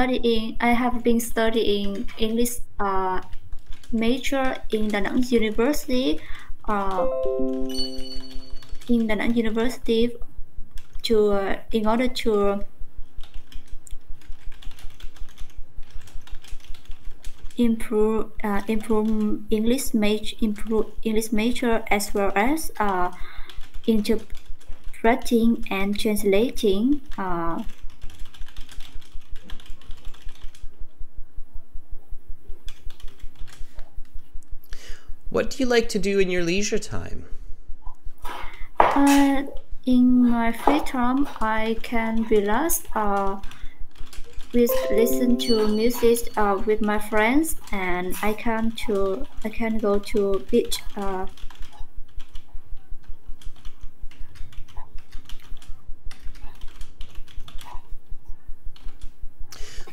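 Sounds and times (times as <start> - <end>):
computer keyboard typing: 3.2 - 9.4, 13.1 - 17.7, 22.4 - 25.4, 27.2 - 30.7, 32.7 - 33.6, 40.9 - 57.8.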